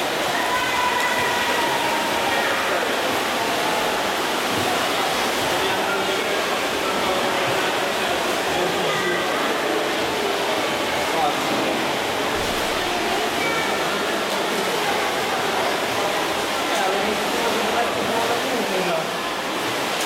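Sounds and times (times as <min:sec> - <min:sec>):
spectators' voices: 0:00.0 - 0:20.0
splashing water: 0:00.0 - 0:20.0.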